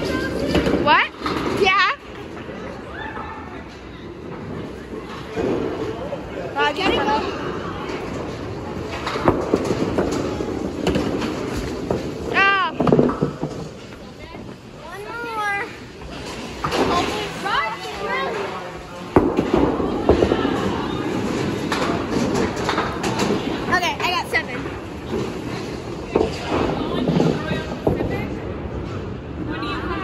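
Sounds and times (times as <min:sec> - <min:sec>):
bowling balls and pins crashing: 0:04.2 - 0:14.0, 0:16.1 - 0:28.7.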